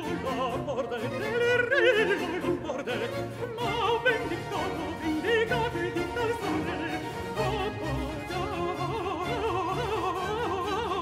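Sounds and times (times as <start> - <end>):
baroque orchestra: 0.0 - 11.0
high voice singing with vibrato: 0.0 - 11.0.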